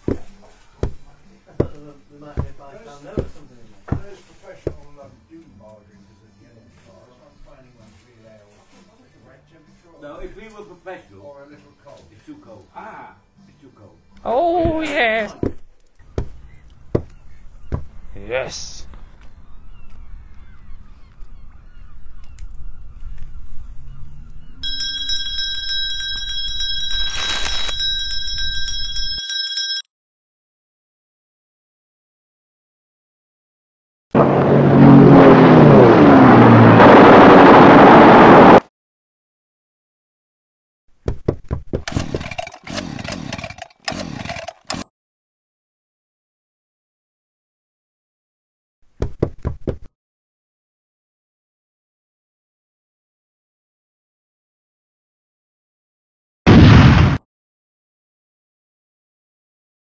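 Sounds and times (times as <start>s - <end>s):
small bell ringing rapidly: 24.6s - 29.9s
rush of noise: 34.2s - 38.6s
quick knocks: 41.0s - 42.3s, 49.0s - 49.9s.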